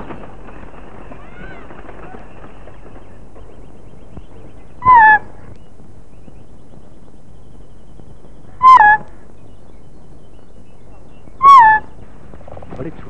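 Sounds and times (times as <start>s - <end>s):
bird calling: 0.0s - 13.0s.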